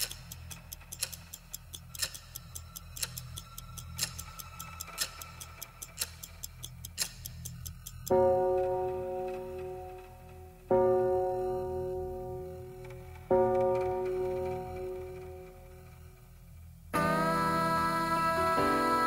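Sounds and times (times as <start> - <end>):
clock ticking: 0.0 - 10.4.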